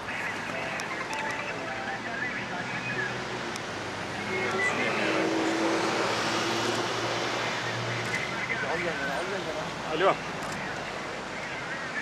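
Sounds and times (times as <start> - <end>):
traffic noise: 0.0 - 12.0
vehicle passing: 1.4 - 11.3.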